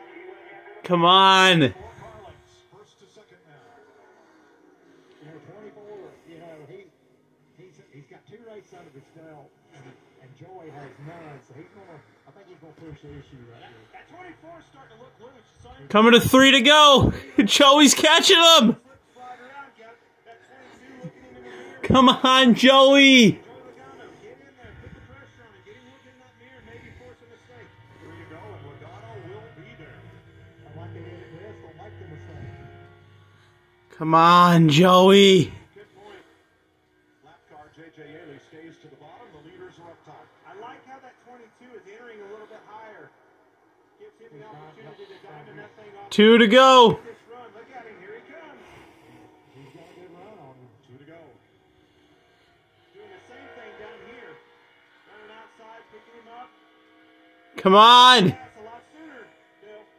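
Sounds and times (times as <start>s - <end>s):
tv announcers commentary: 0.9s - 2.7s, 10.7s - 35.8s, 44.5s - 50.5s, 57.6s - 58.6s
low steady drone: 23.4s - 34.0s.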